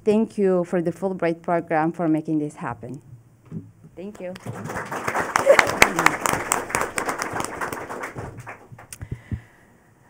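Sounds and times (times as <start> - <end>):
audience applause: 4.2 - 8.9.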